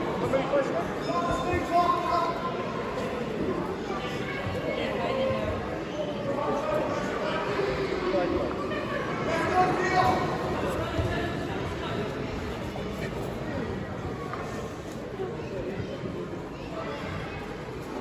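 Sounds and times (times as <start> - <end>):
indistinct chatter of many voices: 0.0 - 18.0.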